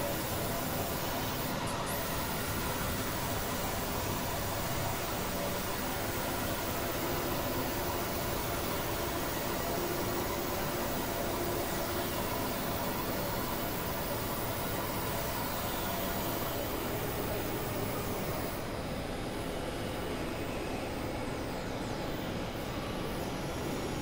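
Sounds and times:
dense noise hiss: 0:00.0 - 0:24.0.

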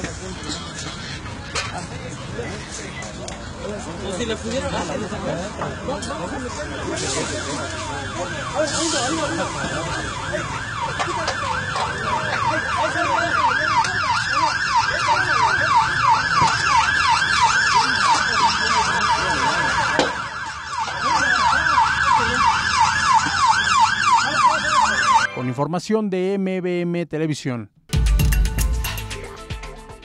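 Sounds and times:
emergency siren yelping: 0:04.2 - 0:25.5.

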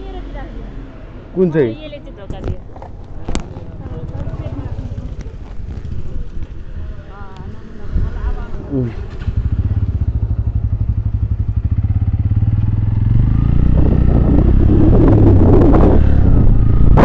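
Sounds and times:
motorcycle engine: 0:00.0 - 0:17.0
wind rushing over microphone: 0:02.2 - 0:17.0.

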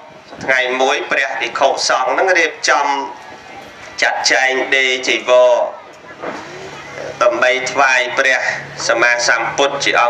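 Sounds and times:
man preaching through microphone: 0:00.4 - 0:03.2, 0:04.0 - 0:05.8, 0:07.0 - 0:10.0.

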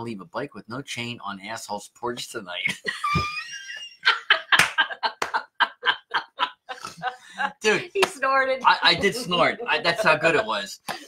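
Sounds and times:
people laughing hard: 0:02.7 - 0:07.8, 0:08.6 - 0:10.7.

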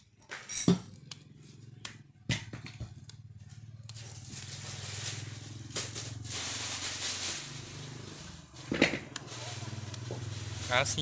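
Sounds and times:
electric motor humming: 0:03.0 - 0:11.0.

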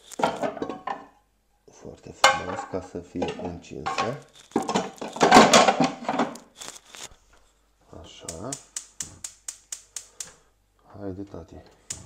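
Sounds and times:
man's voice: 0:08.0 - 0:09.2.

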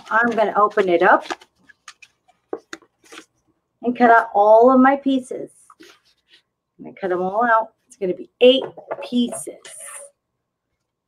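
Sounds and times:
paper plate crinkling: 0:00.0 - 0:03.4.

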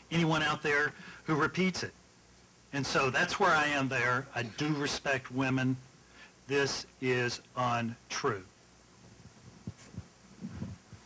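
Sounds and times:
soft low thumps: 0:09.2 - 0:11.0.

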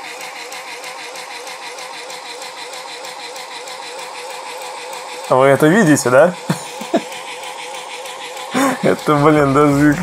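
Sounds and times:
electric motor whining and rattling: 0:00.0 - 0:10.0.

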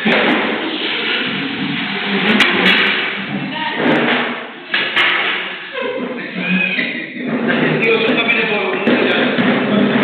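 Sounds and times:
babble of people talking: 0:00.6 - 0:10.0
sharp knocks: 0:07.3 - 0:10.0.

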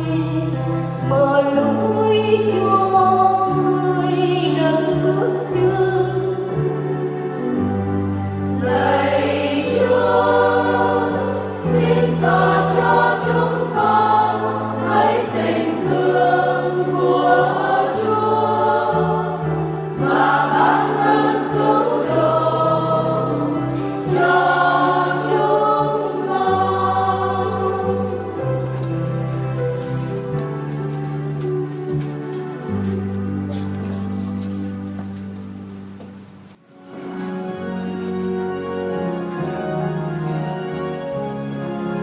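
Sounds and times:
church choir singing a psalm: 0:00.0 - 0:31.4
instrumental accompaniment: 0:00.0 - 0:42.0.

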